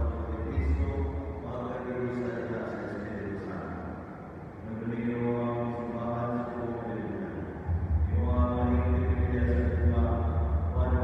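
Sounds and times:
person chanting a prayer: 4.6 - 11.0
low sustained bass tone: 6.6 - 11.0.

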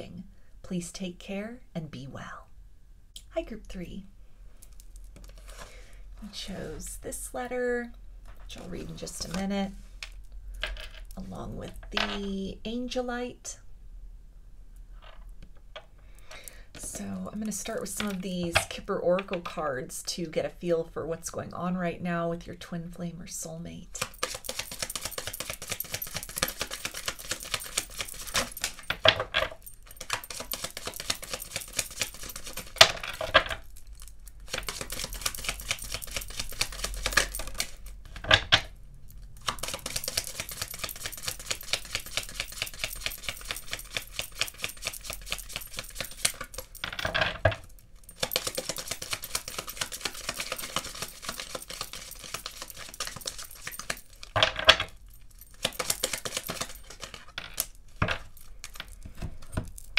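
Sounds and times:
cards being shuffled: 24.0 - 33.6, 34.4 - 38.5, 39.4 - 46.8, 48.1 - 54.4, 55.5 - 59.9.

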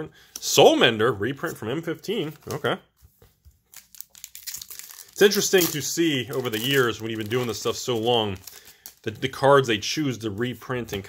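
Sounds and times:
foil wrapper crinkling and tearing: 3.6 - 9.3.

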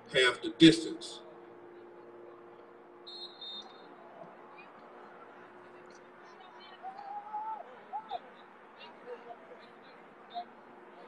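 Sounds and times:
faint steady hum: 0.0 - 11.0
referee's whistle: 3.1 - 3.9.

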